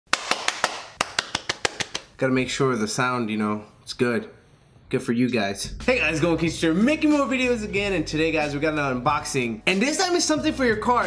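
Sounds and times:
person clapping hands: 0.1 - 2.2.

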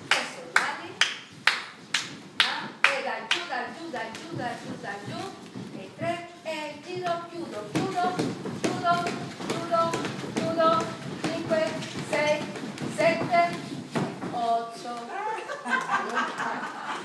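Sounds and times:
people talking: 2.4 - 13.6, 14.3 - 16.9.

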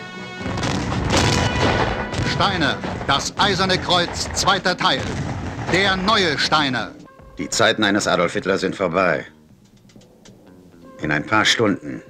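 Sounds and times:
heavy explosion boom: 0.4 - 6.8.

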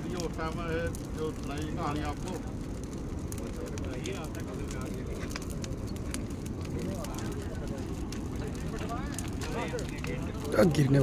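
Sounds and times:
men talking: 0.0 - 11.0
steady low rumble: 0.0 - 11.0.

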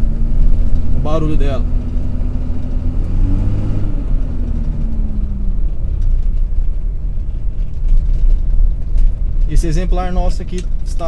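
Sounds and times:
diesel engine rumble: 0.0 - 11.0.

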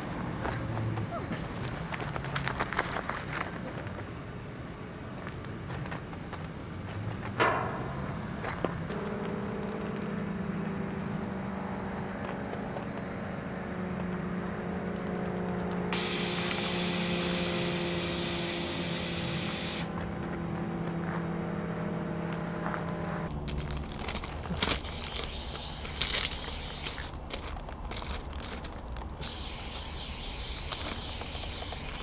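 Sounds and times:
steady low hum: 6.0 - 32.0
spray paint can hissing: 15.9 - 20.0, 24.6 - 27.2, 29.2 - 32.0.

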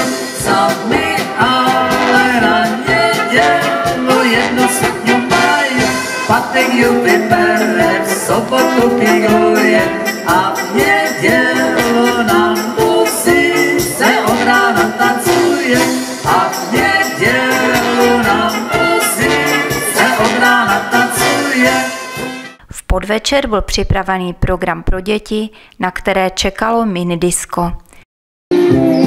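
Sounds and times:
brass band playing: 0.0 - 22.6
man and woman singing: 0.3 - 22.1.

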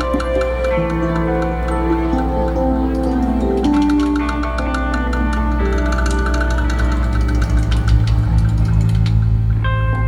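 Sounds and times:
heavy bass line: 0.0 - 10.0
live band playing amplified music: 0.0 - 10.0.

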